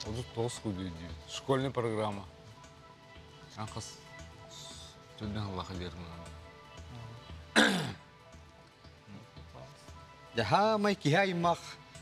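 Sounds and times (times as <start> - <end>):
quiet background music: 0.0 - 12.0
man clearing his throat: 7.6 - 8.0.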